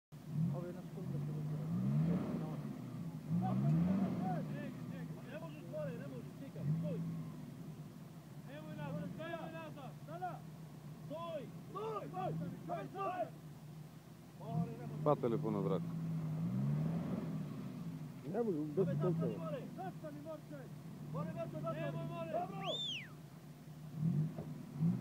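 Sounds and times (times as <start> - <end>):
engine revving: 0.1 - 7.7, 14.4 - 23.2, 23.8 - 25.0
people calling out: 9.0 - 13.5, 21.2 - 23.2.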